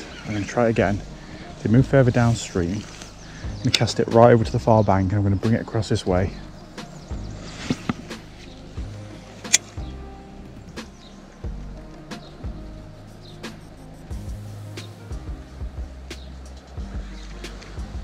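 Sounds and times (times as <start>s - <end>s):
background music with low notes: 0.0s - 18.0s.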